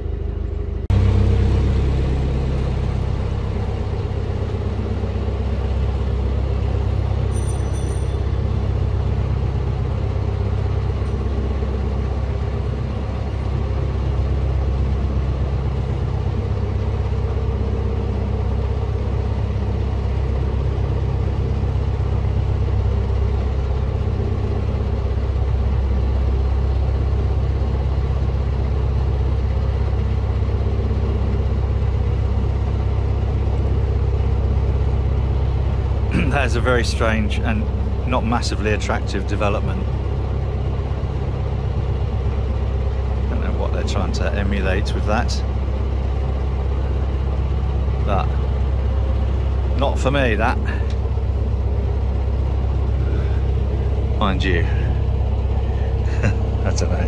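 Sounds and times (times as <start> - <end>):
diesel boat engine rumbling: 0.0 - 57.0.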